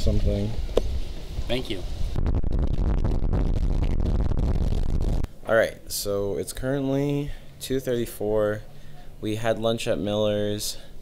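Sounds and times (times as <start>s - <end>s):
wind buffeting microphone: 0.0s - 5.3s.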